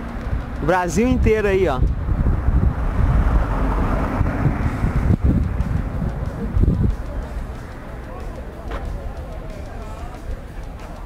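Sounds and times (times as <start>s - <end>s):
wind rumbling on microphone: 0.0s - 8.0s
highway vehicle noise: 0.0s - 11.0s.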